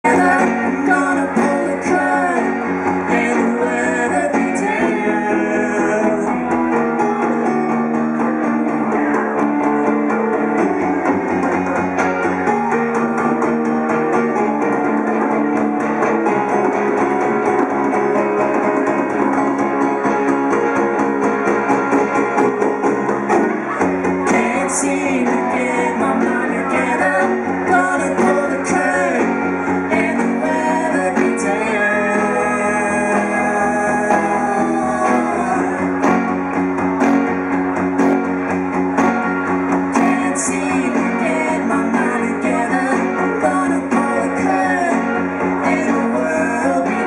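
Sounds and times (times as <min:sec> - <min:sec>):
person singing: 0:00.0 - 0:07.5, 0:23.5 - 0:36.4, 0:39.8 - 0:47.0
strummed guitar: 0:00.0 - 0:47.0.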